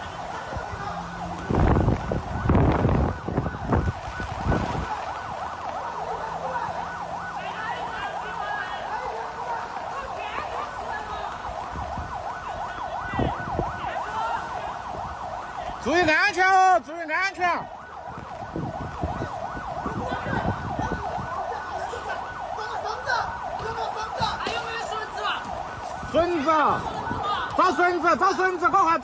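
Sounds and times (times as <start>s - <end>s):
emergency sirens wailing: 0.0s - 29.0s.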